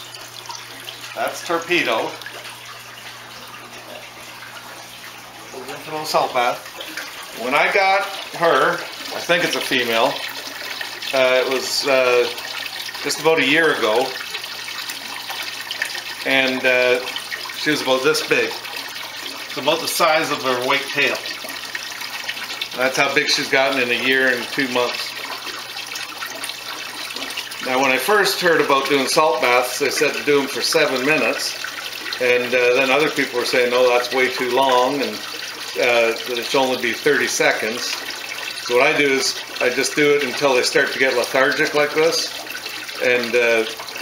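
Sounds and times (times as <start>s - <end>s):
running water: 0.0s - 44.0s.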